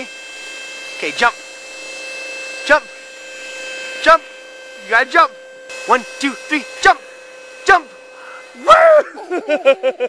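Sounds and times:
person calling: 7.6 - 9.8.

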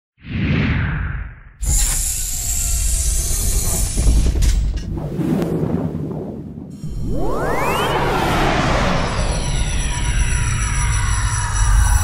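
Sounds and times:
deep rumble: 4.0 - 12.0
whoosh: 4.8 - 11.2
burst of rushing noise: 6.8 - 10.8.

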